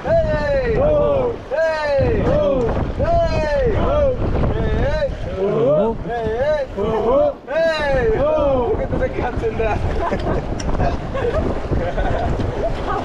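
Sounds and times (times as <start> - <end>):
wind noise on microphone: 0.0 - 13.0.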